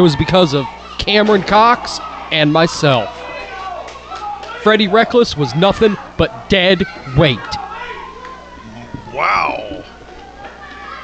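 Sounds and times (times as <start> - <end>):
small indoor crowd: 0.0 - 11.0
high-pitched drawn-out voice: 8.6 - 9.8
man commentating: 8.7 - 9.9.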